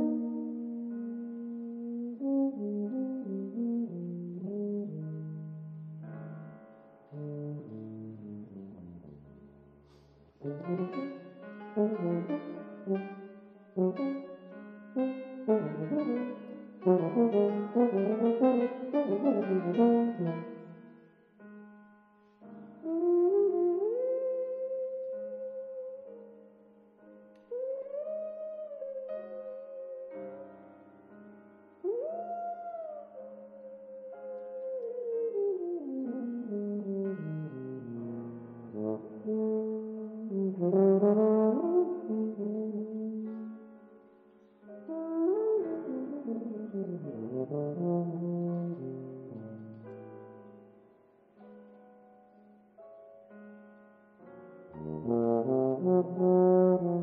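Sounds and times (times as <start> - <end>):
tuba playing: 0.0 - 6.5, 7.1 - 9.3, 10.4 - 21.0, 22.7 - 25.5, 34.3 - 43.6, 44.7 - 49.8, 54.8 - 57.0
grand piano playing: 0.0 - 57.0.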